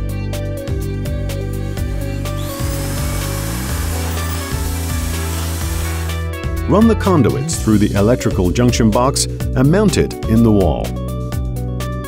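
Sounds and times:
background music: 0:00.0 - 0:12.0
electric drill boring wood: 0:01.4 - 0:06.2.

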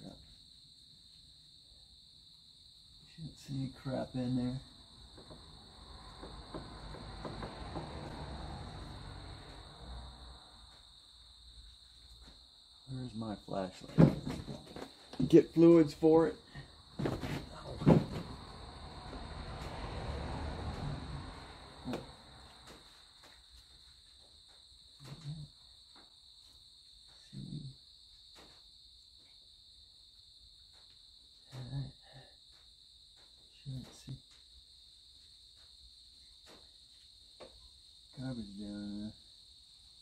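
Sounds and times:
crickets chirring: 0:00.0 - 0:40.0.

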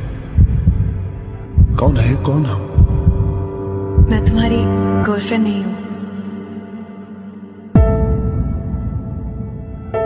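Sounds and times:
deep heartbeat-like thumps: 0:00.0 - 0:04.7.

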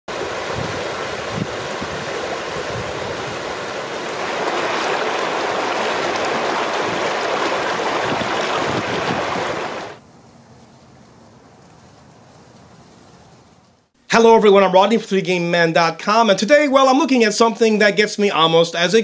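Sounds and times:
creek rushing over stones: 0:00.1 - 0:10.0.

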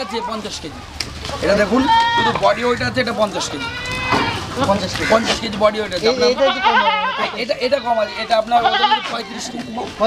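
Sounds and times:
men talking: 0:00.0 - 0:10.0
goats bleating: 0:01.3 - 0:10.0.

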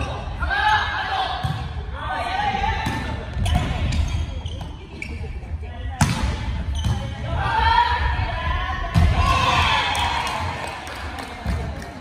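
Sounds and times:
players' voices in large hall: 0:00.0 - 0:12.0.

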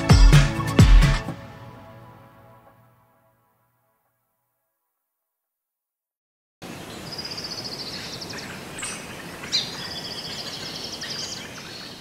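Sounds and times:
songbird trilling: 0:06.8 - 0:12.0.

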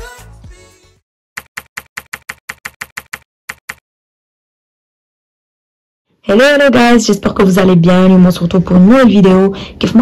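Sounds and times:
typewriter clicks: 0:01.4 - 0:03.8.

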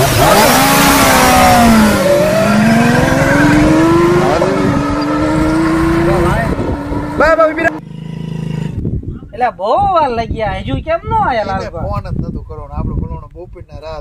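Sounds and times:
motorcycle engine accelerating: 0:00.0 - 0:09.2.

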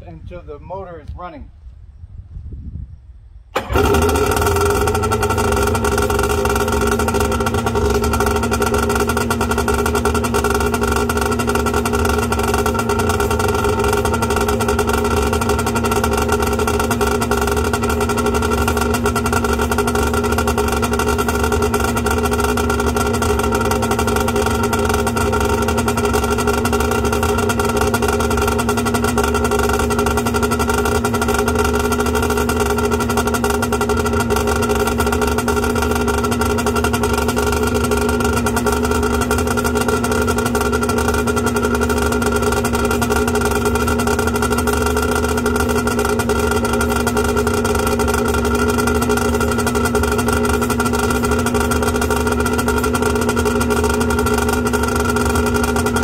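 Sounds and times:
two-stroke engine idling: 0:03.5 - 0:56.0.

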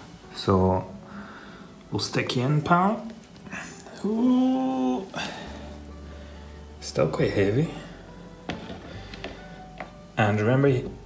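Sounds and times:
quiet background music: 0:00.0 - 0:11.0
shell knocking on plastic tub: 0:08.5 - 0:10.0.

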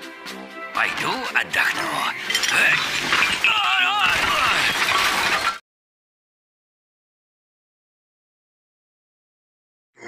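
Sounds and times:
crockery smashing: 0:02.1 - 0:05.6
wooden table collapsing: 0:02.2 - 0:05.6.

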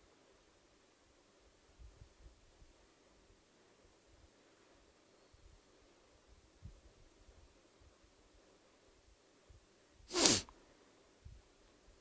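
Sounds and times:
man sneezing: 0:10.1 - 0:10.5.

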